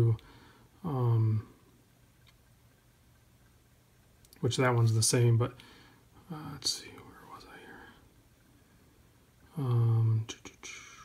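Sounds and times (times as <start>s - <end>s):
man whispering: 0.8s - 1.6s, 4.4s - 8.1s, 9.5s - 11.0s.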